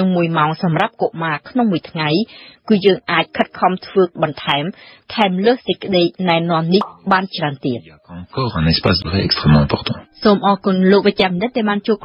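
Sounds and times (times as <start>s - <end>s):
person narrating: 8.0s - 10.0s.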